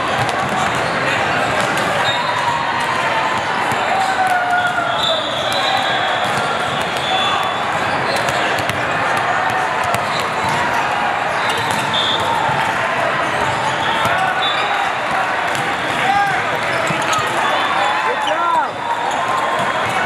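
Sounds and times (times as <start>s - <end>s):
players' voices: 0.0s - 20.0s
volleyballs hit and bouncing: 0.0s - 20.0s
sneakers squeaking: 0.2s - 20.0s.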